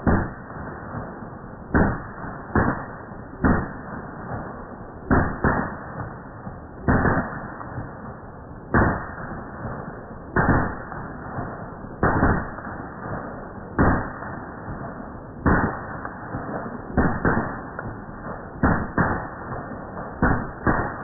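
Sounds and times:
rifle gunshots with echo: 0.0 - 21.0.

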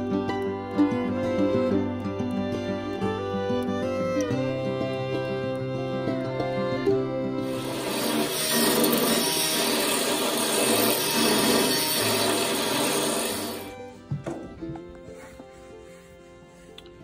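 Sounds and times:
background music: 0.0 - 17.0
harsh rasping tool noise: 7.4 - 13.9.

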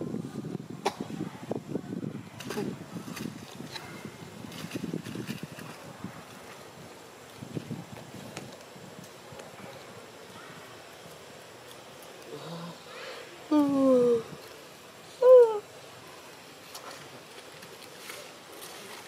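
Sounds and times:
soft wind: 0.0 - 19.0
dry leaves crackling and rustling: 2.4 - 12.4, 15.7 - 19.0.

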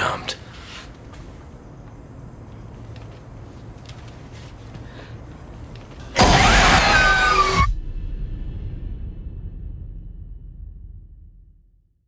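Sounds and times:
faint low rumble: 7.7 - 12.0.

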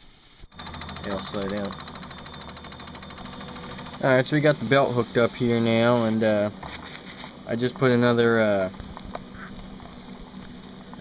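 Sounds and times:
bubbling hiss of steam boiler: 3.9 - 6.9.

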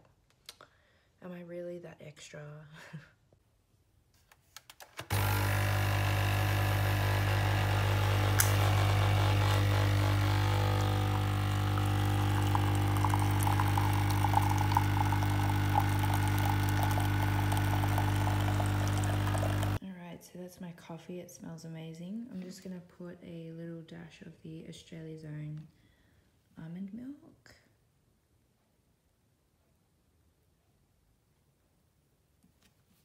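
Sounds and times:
coffee machine pump buzzing: 5.1 - 19.8
coffee streaming into cup: 5.1 - 19.8.

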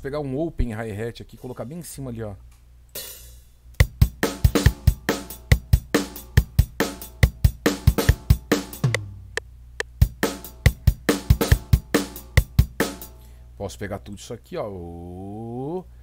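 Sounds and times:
rock drum beat: 3.0 - 13.2.

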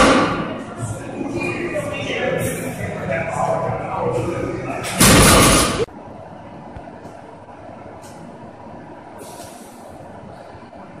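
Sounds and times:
barbell crashing to rubber floor: 5.0 - 5.9.

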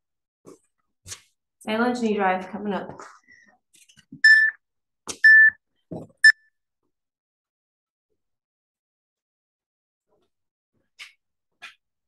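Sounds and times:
electronic timer beeping: 4.2 - 4.6, 5.2 - 5.6.

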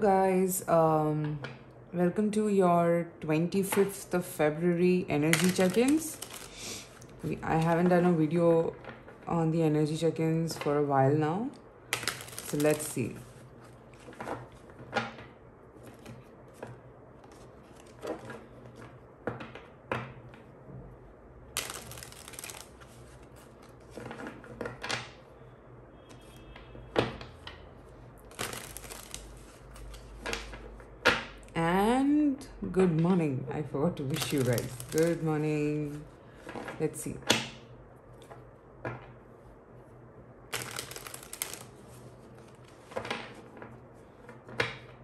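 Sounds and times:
cards riffle shuffling: 5.4 - 7.1, 12.0 - 13.0, 21.6 - 23.9, 28.3 - 30.2, 34.2 - 35.2, 40.5 - 41.7.

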